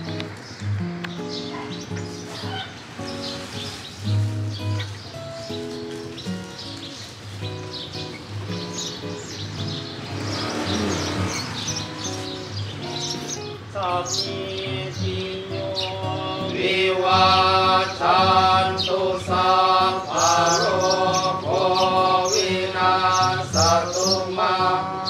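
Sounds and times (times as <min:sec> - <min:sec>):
birds chirping: 0:00.0 - 0:25.0.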